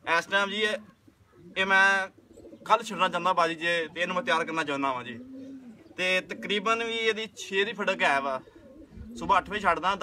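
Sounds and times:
pigeons cooing: 0.6s - 10.0s
man's voice: 9.2s - 10.0s.

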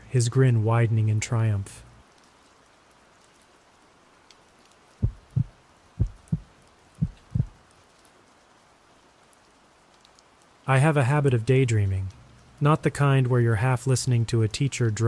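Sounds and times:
faint steady hiss: 0.0s - 15.0s
heartbeat thumps: 5.0s - 7.6s.

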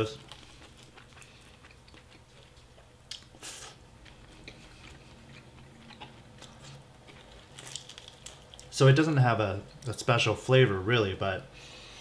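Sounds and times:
chewing crispy fried chicken: 0.0s - 8.9s.

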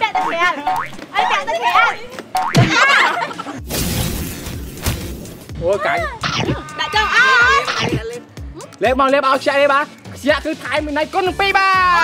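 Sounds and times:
excited high-pitched voices calling: 0.0s - 2.1s, 6.0s - 8.0s.

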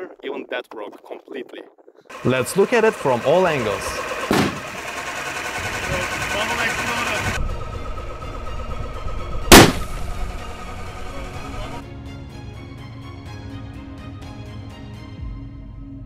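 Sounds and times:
plastic bottle bursting bang: 4.3s - 4.6s, 9.5s - 9.9s
music: 6.9s - 16.0s.

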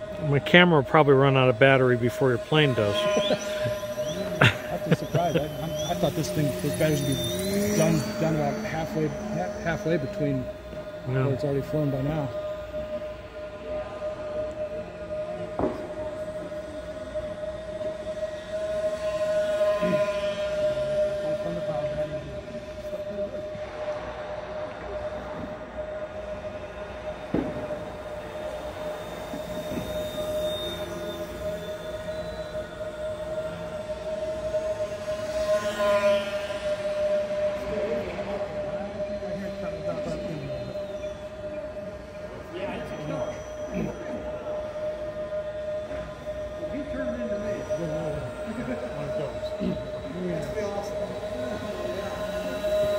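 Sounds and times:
model plane motors buzzing: 0.0s - 52.9s.

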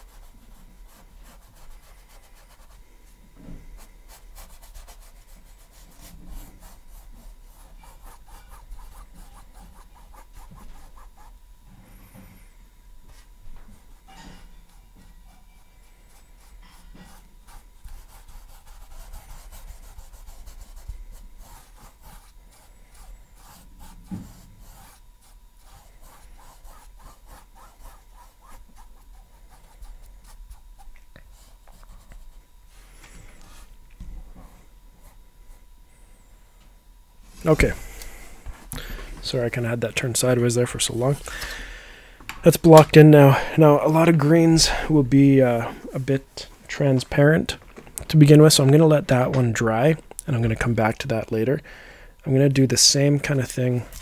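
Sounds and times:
paintbrush scrubbing on canvas: 0.0s - 12.4s, 14.8s - 33.7s.

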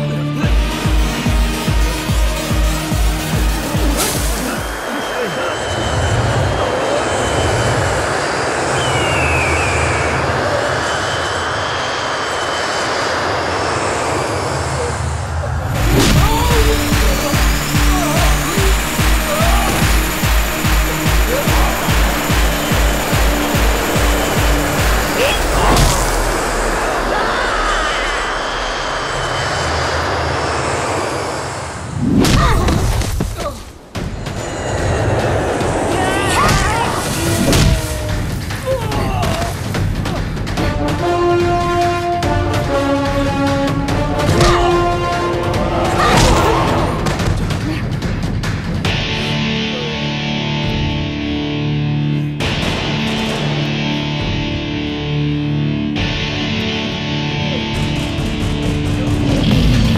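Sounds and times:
rushing roar with low rumble: 0.2s - 59.9s
sharp hit with whoosh: 15.7s - 17.8s, 24.0s - 27.1s.

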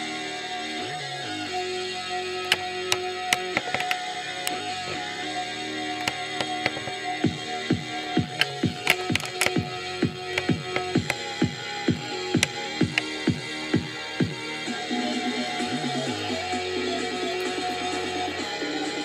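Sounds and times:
song playing from boombox: 0.0s - 19.0s.

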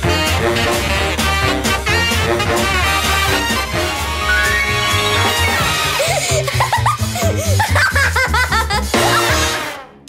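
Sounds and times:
upbeat cartoon music: 0.0s - 10.0s
little girl giggling: 5.7s - 9.4s.

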